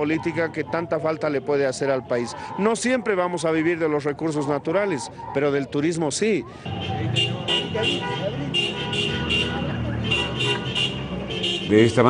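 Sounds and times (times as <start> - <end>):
rhythmic horns tooting: 0.0 - 3.5, 6.6 - 12.0
crowd voices: 0.0 - 11.7.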